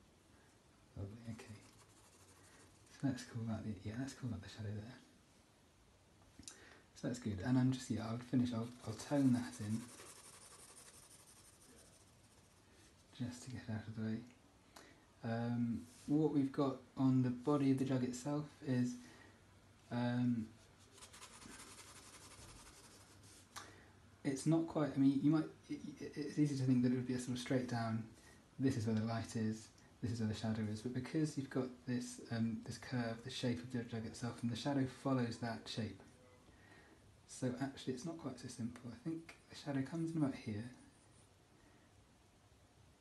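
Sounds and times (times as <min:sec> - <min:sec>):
pencil scratching on paper: 0:01.5 - 0:02.9, 0:08.6 - 0:12.6, 0:21.0 - 0:23.4.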